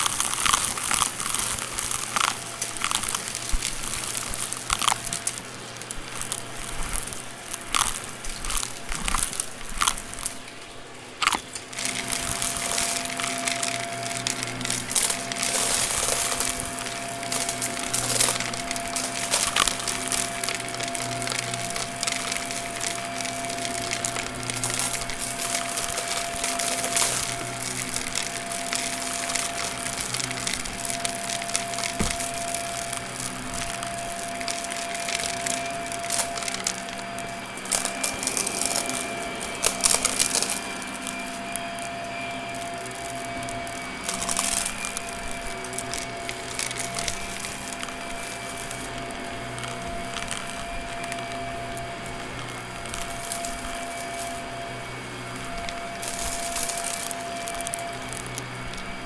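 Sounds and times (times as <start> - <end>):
small pieces rattling through hose: 0.0 - 59.0
vacuum motor hum and whine: 0.0 - 59.0.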